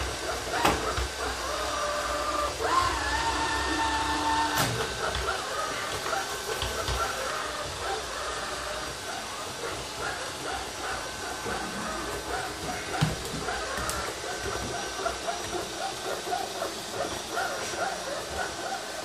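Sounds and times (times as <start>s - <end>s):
robot vacuum cleaner whirring: 0.0s - 19.0s.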